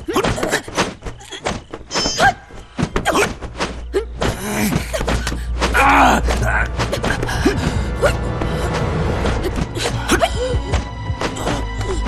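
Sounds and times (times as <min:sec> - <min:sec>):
dramatic background music: 0:02.0 - 0:12.0.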